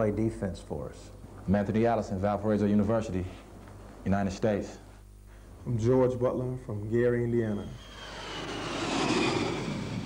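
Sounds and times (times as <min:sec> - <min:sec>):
faint high whine: 0:00.0 - 0:10.0
jet engine noise: 0:07.1 - 0:10.0.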